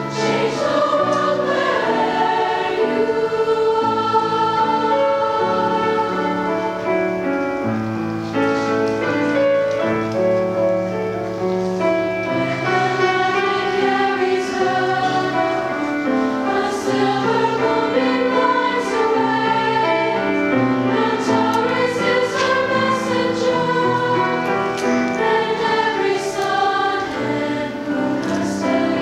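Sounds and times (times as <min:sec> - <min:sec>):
girls' choir singing in harmony: 0:00.0 - 0:10.9, 0:11.6 - 0:29.0.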